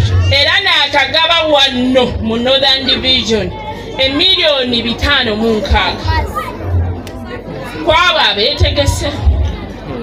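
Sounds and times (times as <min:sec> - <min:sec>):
woman speaking over loudspeaker: 0:00.0 - 0:06.4, 0:07.6 - 0:09.6
background chatter: 0:00.0 - 0:10.0.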